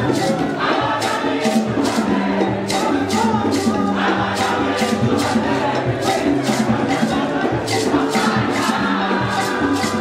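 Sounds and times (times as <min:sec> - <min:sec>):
choir singing a carol: 0:00.0 - 0:10.0
instrumental accompaniment: 0:00.0 - 0:10.0
percussion beat: 0:00.0 - 0:10.0.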